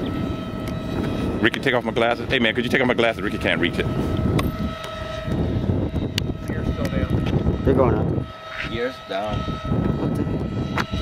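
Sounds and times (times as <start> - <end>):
electric ducted fans whining: 0.0 - 11.0
wind rumbling on microphone: 0.0 - 11.0.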